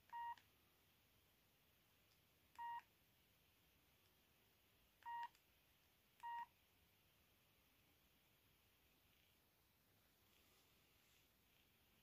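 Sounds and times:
phone keypad beeps: 0:00.1 - 0:00.4, 0:02.6 - 0:02.9, 0:05.0 - 0:05.4, 0:06.2 - 0:06.5.

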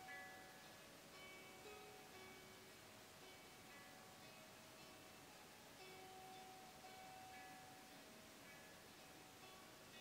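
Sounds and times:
faint ambient meditation music: 0:00.0 - 0:10.0.

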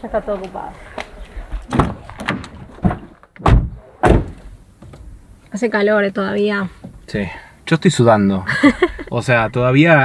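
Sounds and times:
car door knocks and clicks: 0:01.7 - 0:05.1
car doors slamming: 0:01.7 - 0:05.1.

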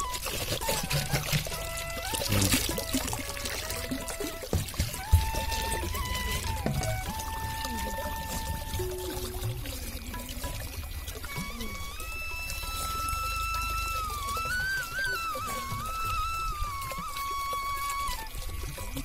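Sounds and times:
background music with held notes: 0:00.0 - 0:19.0
water filling plastic bottle: 0:00.0 - 0:19.0.

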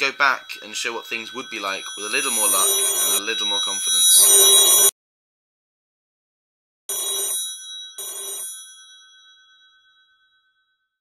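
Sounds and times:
telephone bell ringing: 0:00.0 - 0:04.9, 0:06.9 - 0:10.9.

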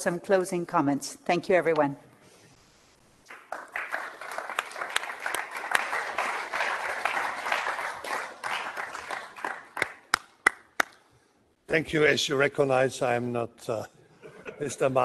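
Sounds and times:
audience applause: 0:03.3 - 0:10.6.

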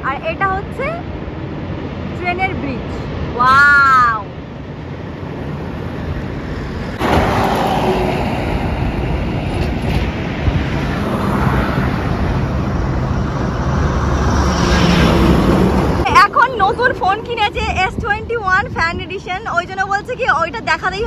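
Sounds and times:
highway traffic passing: 0:00.0 - 0:21.0.

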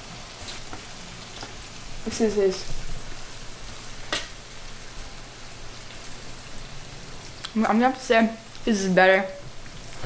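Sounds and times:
mushrooms sizzling in oil: 0:00.0 - 0:10.0.

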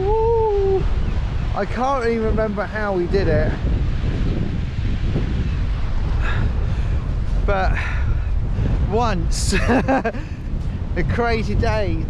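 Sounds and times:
sea surf churning: 0:00.0 - 0:12.0
wind buffeting microphone: 0:00.0 - 0:12.0.

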